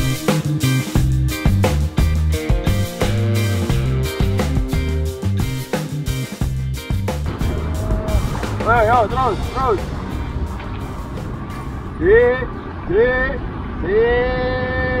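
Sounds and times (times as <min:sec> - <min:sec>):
steady low rumble: 0:06.5 - 0:13.8
person's wordless vocal calls: 0:07.4 - 0:08.8.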